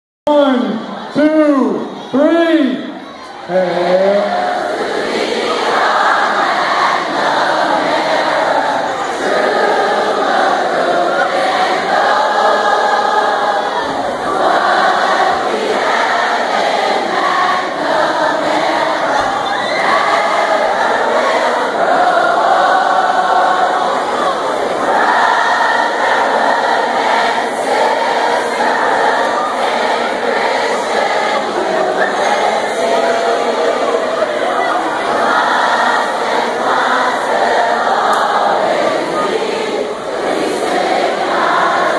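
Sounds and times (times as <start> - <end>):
crowd singing together: 2.9 - 41.9.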